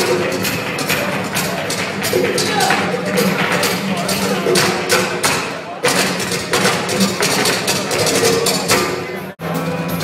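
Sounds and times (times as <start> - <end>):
live band through pa: 0.0 - 10.0
sharp percussion strikes: 0.0 - 10.0.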